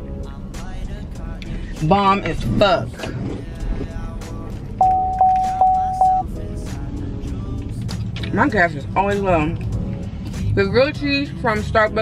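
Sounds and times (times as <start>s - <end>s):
background music: 0.0s - 12.0s
car dashboard warning chime: 4.8s - 6.3s.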